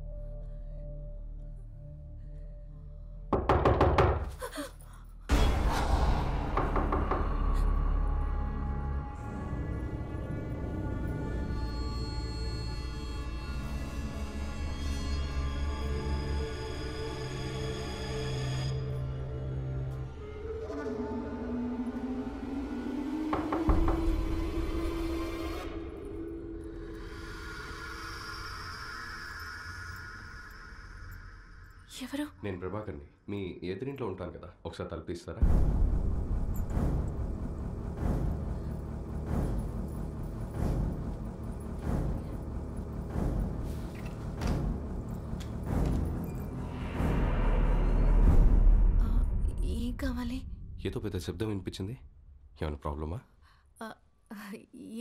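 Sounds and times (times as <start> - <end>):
low rumble: 35.4 - 52.6.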